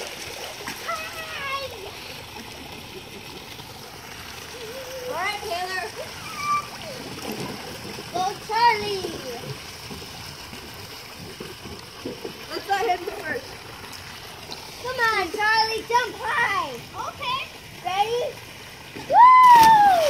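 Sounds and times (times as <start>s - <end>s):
pool water splashing: 0.0s - 20.0s
water pouring off pool slide: 0.0s - 20.0s
children calling out: 6.0s - 7.0s.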